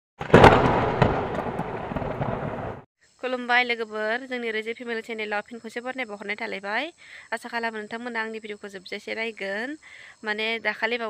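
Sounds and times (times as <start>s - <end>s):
scattering debris noise: 0.2s - 2.8s
loud crash of something bursting: 0.2s - 2.9s.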